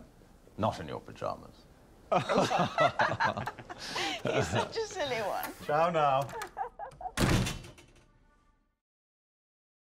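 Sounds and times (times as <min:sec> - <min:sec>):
door shutting: 0:06.2 - 0:08.2.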